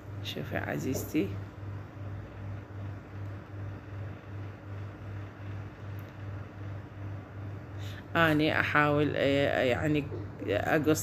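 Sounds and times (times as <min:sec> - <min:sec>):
low throbbing hum: 0:00.0 - 0:11.0.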